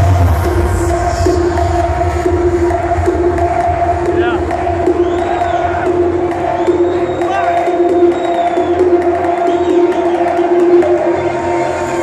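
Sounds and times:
crowd cheering and shouting: 0.0 - 12.0
electronic dance music: 0.0 - 12.0.

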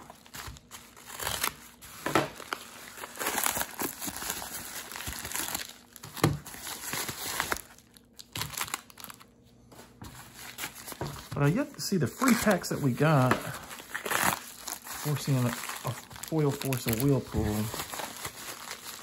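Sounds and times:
paper mailer crinkling: 10.1 - 19.0.

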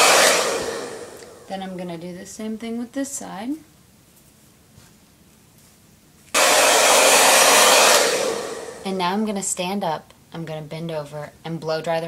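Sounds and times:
hair dryer blowing: 0.0 - 1.6, 6.3 - 9.1.

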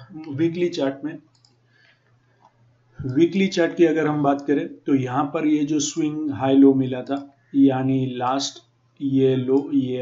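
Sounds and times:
person speaking: 0.0 - 1.3, 3.0 - 10.0
faint computer mouse clicks: 1.3 - 1.6.

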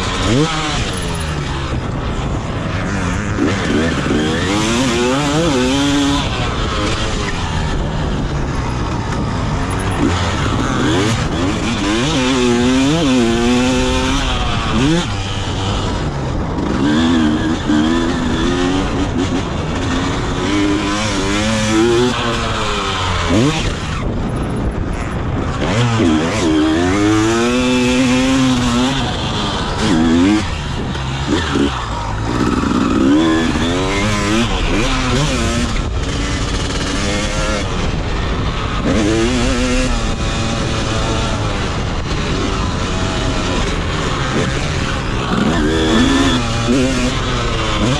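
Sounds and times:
motorcycle engine revving: 0.0 - 47.9.

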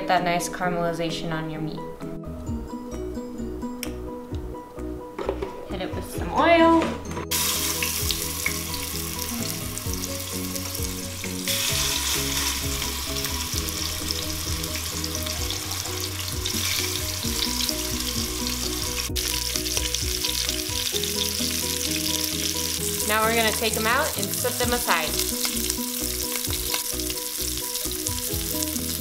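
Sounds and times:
soft background music: 0.0 - 29.0
meat sizzling in hot oil: 7.3 - 29.0.

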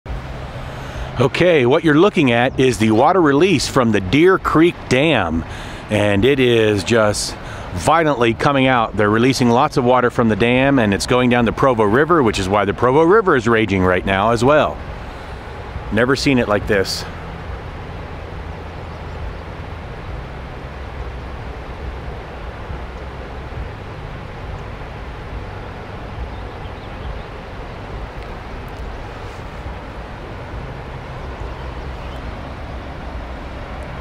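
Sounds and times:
water gushing from dam outlet: 0.1 - 34.0.

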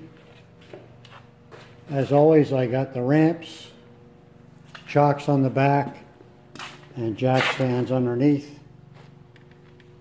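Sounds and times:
faint room hum: 0.0 - 10.0
man speaking: 4.9 - 6.1, 7.0 - 8.6.

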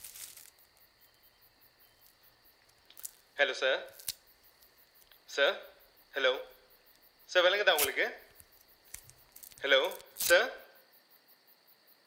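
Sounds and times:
crickets droning: 0.0 - 12.0
man speaking: 3.4 - 4.0, 5.3 - 6.5, 7.3 - 8.3, 9.6 - 10.7.

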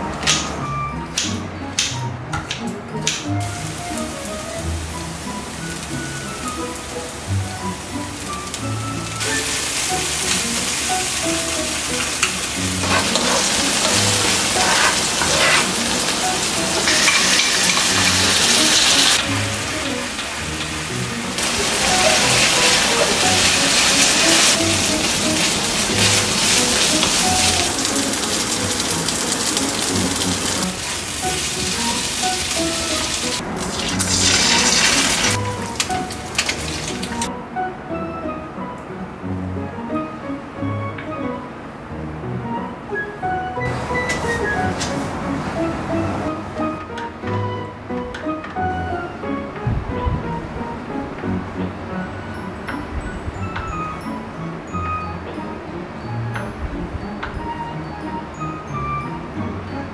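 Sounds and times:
soft background music: 0.0 - 59.9
oil sizzling in frying pan: 3.4 - 37.3.

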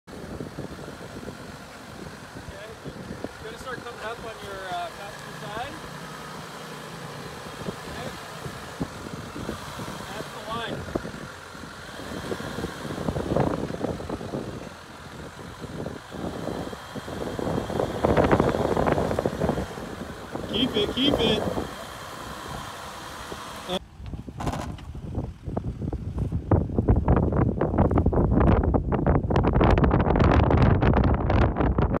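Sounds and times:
diesel engine running: 0.0 - 29.2
wind buffeting microphone: 0.1 - 4.6, 5.5 - 32.0.

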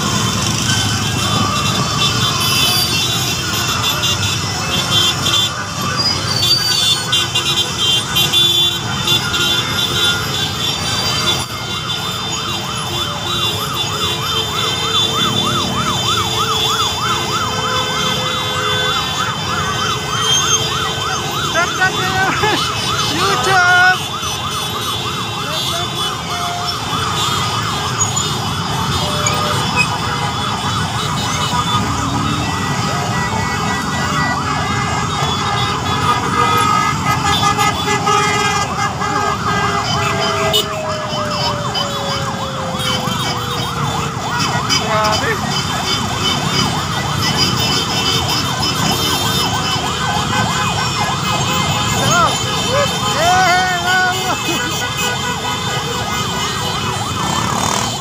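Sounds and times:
motorcycles running: 0.0 - 58.0
sirens yelping and wailing: 0.0 - 58.0
long falling siren tone: 9.7 - 48.7.

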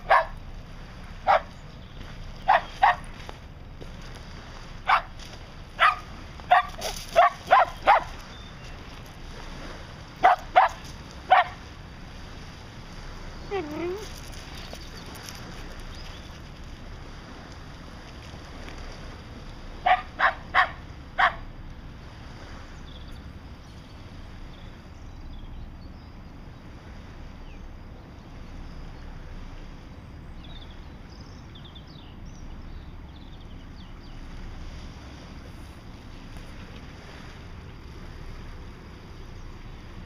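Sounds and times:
dog barking: 0.0 - 0.4, 1.2 - 1.5, 2.4 - 3.1, 4.8 - 5.1, 5.8 - 8.2, 10.2 - 11.6, 19.8 - 21.4.

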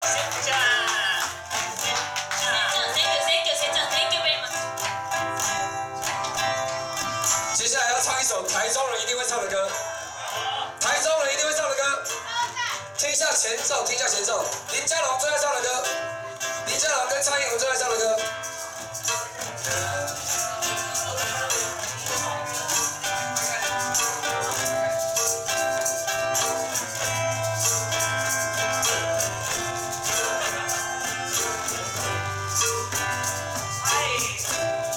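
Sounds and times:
melodica: 0.0 - 11.0, 15.9 - 34.9
acoustic guitar: 0.0 - 34.9
maracas shaking: 0.0 - 34.9.

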